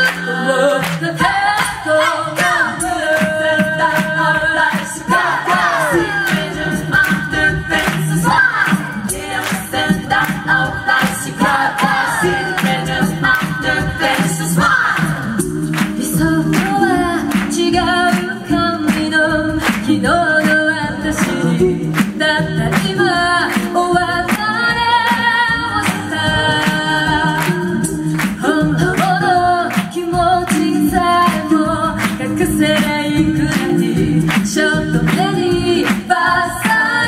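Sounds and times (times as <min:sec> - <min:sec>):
vocal percussion beat: 0:00.0 - 0:37.0
women singing a cappella in harmony: 0:00.0 - 0:37.0.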